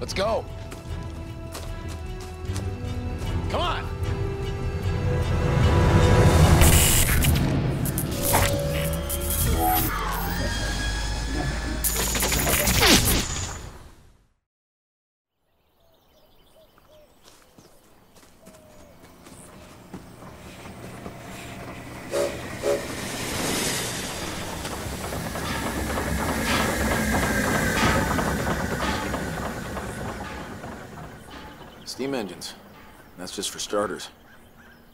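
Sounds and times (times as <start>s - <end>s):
steam train rumble and clatter: 1.0s - 9.8s, 19.1s - 33.8s
steady high tone: 7.9s - 11.8s
train whistle blasts: 22.1s - 23.0s.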